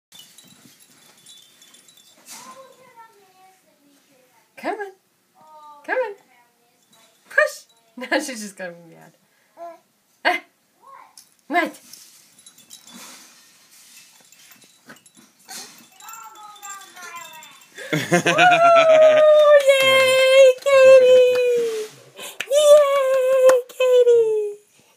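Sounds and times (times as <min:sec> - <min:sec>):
tinkling chime tones: 0:00.1 - 0:03.5, 0:06.7 - 0:08.2, 0:11.8 - 0:19.2
faint movement sounds: 0:00.1 - 0:10.2, 0:10.8 - 0:24.9
baby whining and fussing: 0:09.6 - 0:09.9.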